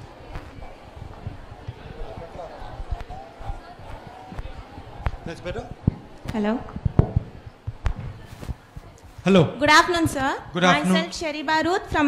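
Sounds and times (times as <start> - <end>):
murmuring audience voices: 0.0 - 9.2
dull low thumps and knocks: 1.0 - 8.9.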